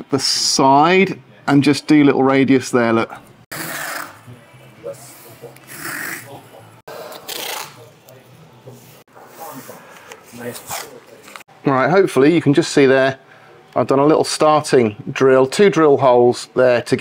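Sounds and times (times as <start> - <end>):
masking tape tearing off roll: 6.9 - 7.9, 10.5 - 11.0.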